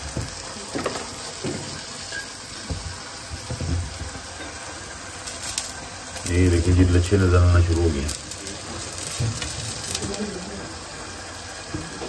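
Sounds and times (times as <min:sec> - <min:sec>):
flatbread sizzling in a pan: 0:00.0 - 0:12.0.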